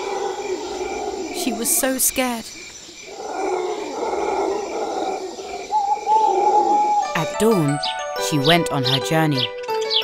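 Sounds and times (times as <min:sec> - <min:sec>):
long howl-like call: 0:00.0 - 0:01.7, 0:03.1 - 0:07.2.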